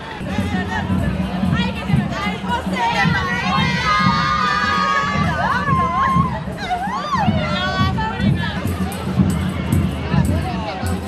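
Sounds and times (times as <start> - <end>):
crowd: 0.0 - 11.0
high voices shouting and cheering: 0.0 - 11.0
parade music with steady beat: 0.0 - 11.0.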